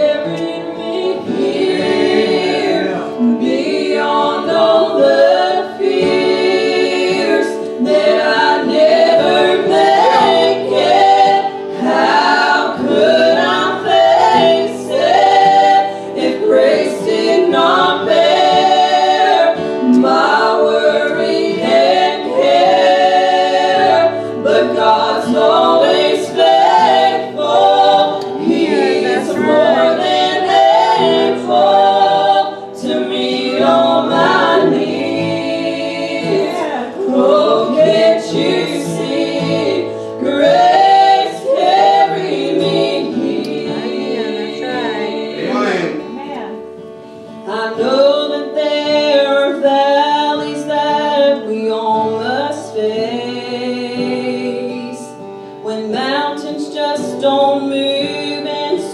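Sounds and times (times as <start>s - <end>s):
group singing gospel song: 0.0s - 46.1s, 47.2s - 58.9s.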